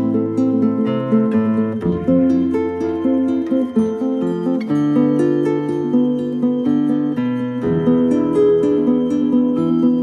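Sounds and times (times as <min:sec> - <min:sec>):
plucked acoustic guitar: 0:00.0 - 0:10.0.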